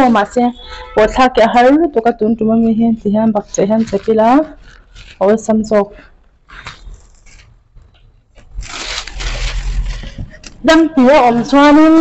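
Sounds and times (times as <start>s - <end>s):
plastic garbage bag rustling: 3.3s - 5.8s, 8.3s - 10.7s.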